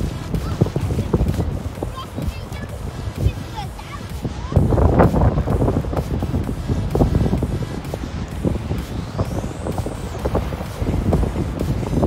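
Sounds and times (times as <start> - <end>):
breaking surf: 0.0 - 12.0
wind buffeting microphone: 0.0 - 12.0.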